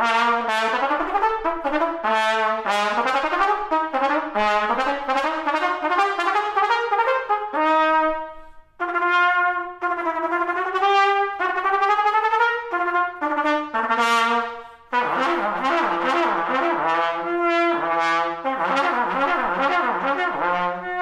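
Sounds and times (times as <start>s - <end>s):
solo trumpet playing: 0.0s - 21.0s.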